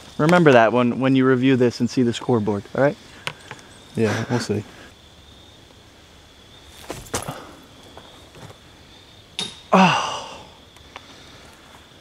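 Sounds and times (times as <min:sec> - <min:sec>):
faint insect buzz: 0:00.0 - 0:12.0
footsteps crunching on dry leaves: 0:06.7 - 0:07.4.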